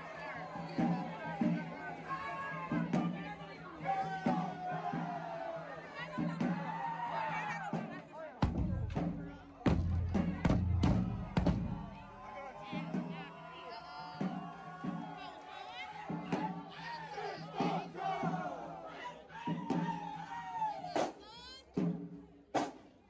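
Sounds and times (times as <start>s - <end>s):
crowd shouting and chanting: 0.0s - 22.7s
bass drum hits: 8.4s - 12.0s.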